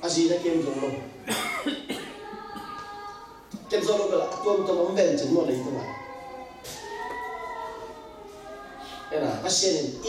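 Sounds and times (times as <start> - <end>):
person coughing: 1.2 - 2.7.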